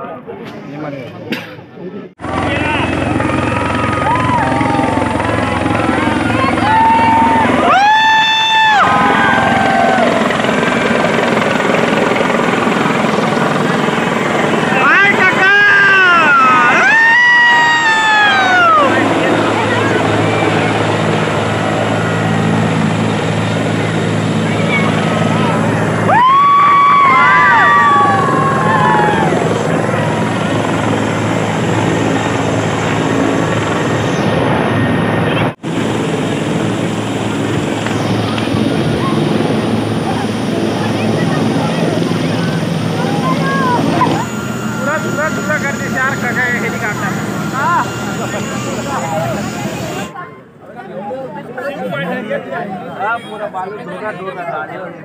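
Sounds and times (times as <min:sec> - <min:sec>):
people's voices: 0:00.0 - 0:55.0
helicopter rotor and engine: 0:02.1 - 0:53.1.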